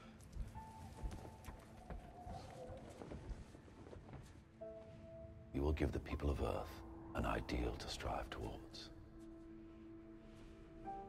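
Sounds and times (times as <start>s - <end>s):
quiet film score with held notes: 0.0s - 11.0s.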